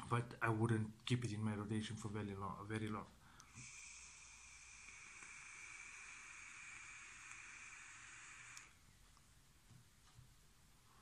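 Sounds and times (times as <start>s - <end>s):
hiss of vape inhale: 3.3s - 8.8s.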